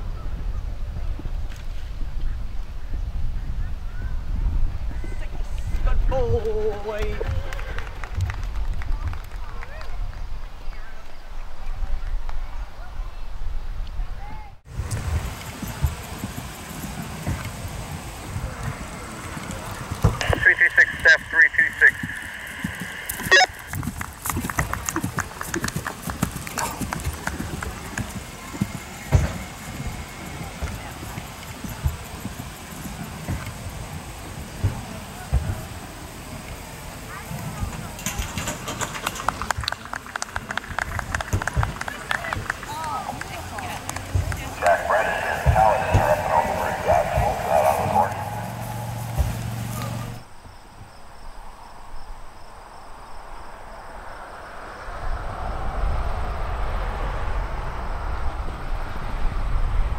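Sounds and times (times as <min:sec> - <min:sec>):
horse hoofbeats on grass: 0:14.7 - 0:35.7, 0:39.0 - 0:50.2
indistinct voices: 0:15.2 - 0:35.8, 0:36.9 - 0:50.2.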